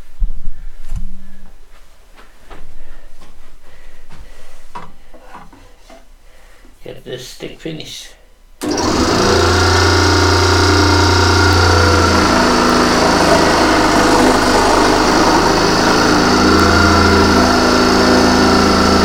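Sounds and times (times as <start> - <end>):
scroll saw cutting wood: 8.6 - 19.0.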